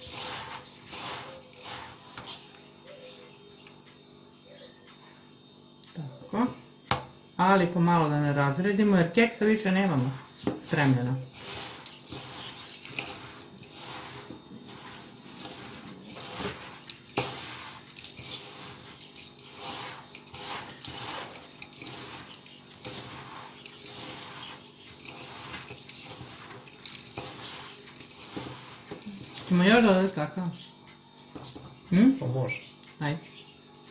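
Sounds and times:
hands kneading crunchy mixture: 0.0 - 3.5, 9.4 - 30.6.

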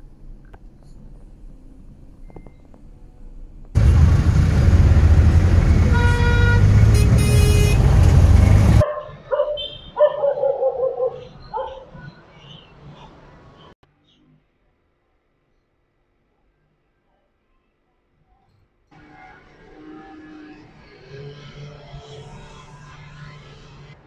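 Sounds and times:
traffic rumble: 0.0 - 13.8
car horns tooting: 5.8 - 10.1.

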